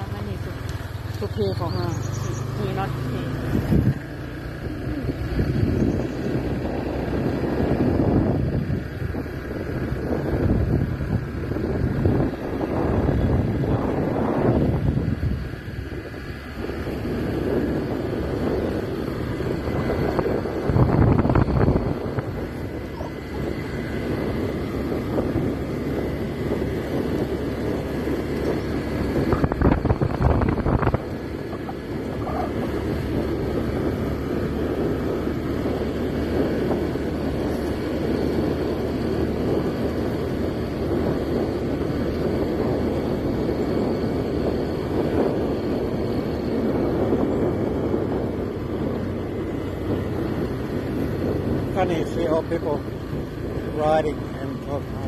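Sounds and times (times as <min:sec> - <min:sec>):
small motorbike engine running: 0:00.0 - 0:55.0
wind on microphone: 0:00.0 - 0:55.0.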